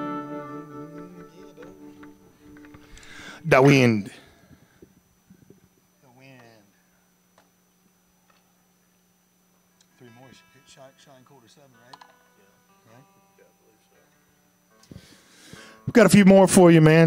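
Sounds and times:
soft guitar notes: 0.0s - 4.0s, 9.8s - 15.9s
sound system hum: 0.0s - 6.0s
breathy noise at microphone: 1.8s - 3.5s, 4.1s - 5.9s, 14.7s - 15.9s.

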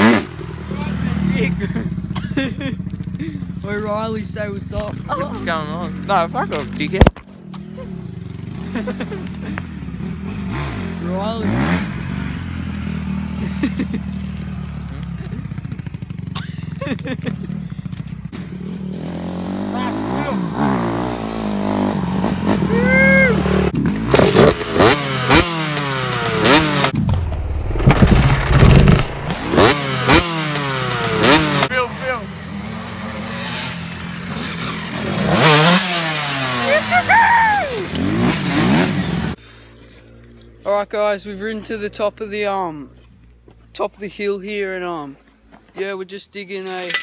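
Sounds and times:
dirt bike engines revving: 0.0s - 27.0s, 29.4s - 46.6s.

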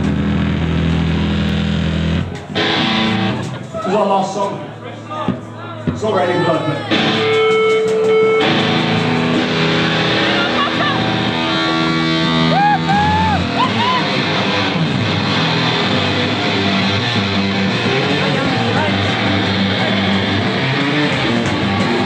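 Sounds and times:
rock band playing live: 0.0s - 3.8s, 6.9s - 22.0s
bent lead guitar notes: 0.0s - 3.9s, 6.9s - 22.0s.

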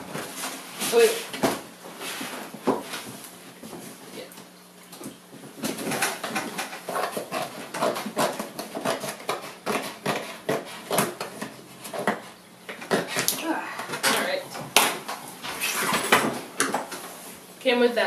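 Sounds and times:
scissors snipping cardboard: 5.7s - 13.3s.

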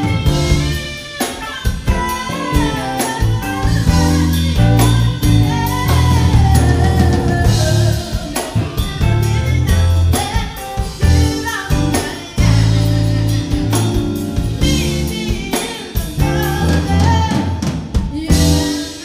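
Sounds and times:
drum kit: 0.0s - 19.0s
guitar: 0.0s - 19.0s
keyboards: 0.0s - 19.0s
sliding melody line: 1.9s - 10.3s.

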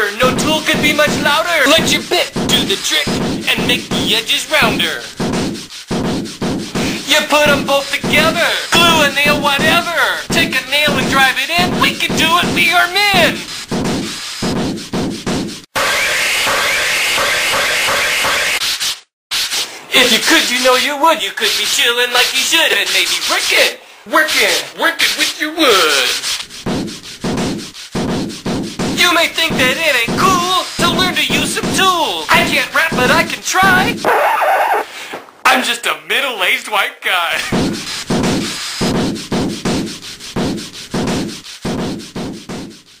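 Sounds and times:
rhythmic scraping strokes: 0.1s - 15.7s, 24.2s - 34.1s, 37.4s - 43.0s
sandpaper rubbing on wood: 0.4s - 15.7s, 18.6s - 34.1s, 37.4s - 43.0s
hammer knocking: 26.6s - 34.0s, 37.4s - 42.8s.

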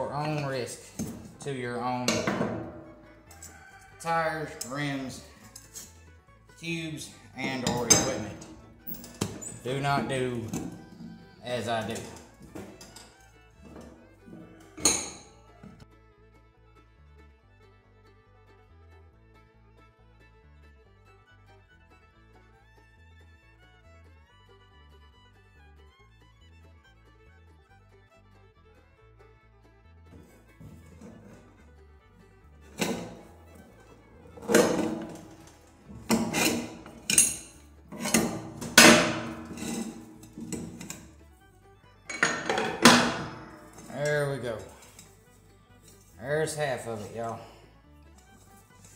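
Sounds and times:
metal tools scraping wheel rim: 0.0s - 15.8s, 30.2s - 31.6s, 32.7s - 41.4s, 42.1s - 48.9s
sharp metal clank: 2.0s - 3.6s, 7.4s - 15.4s, 32.8s - 33.3s, 34.4s - 41.1s, 42.1s - 44.1s.

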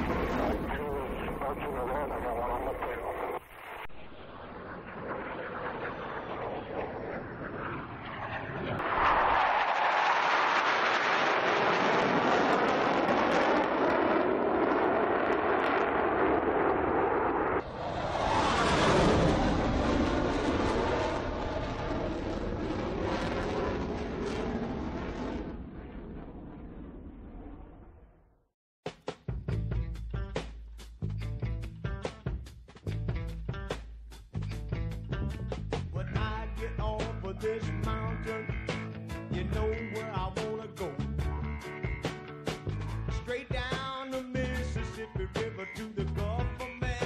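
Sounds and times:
jet aircraft engine: 0.0s - 28.2s.

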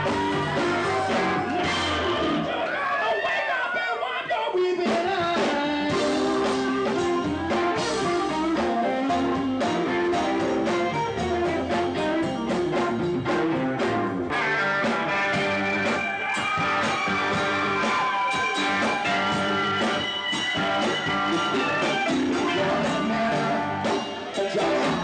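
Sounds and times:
blues-rock band playing: 0.0s - 2.7s, 4.9s - 25.0s
electric guitar: 0.0s - 2.7s, 5.0s - 25.0s.

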